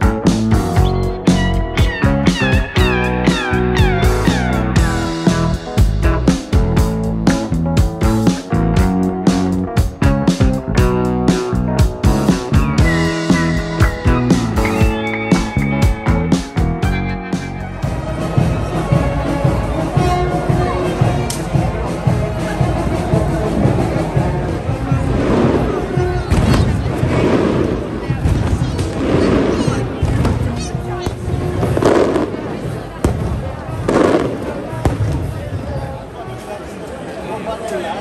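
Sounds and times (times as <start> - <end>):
music: 0.0 - 35.0
crowd chatter: 0.0 - 38.0
fireworks banging and crackling: 20.8 - 36.2.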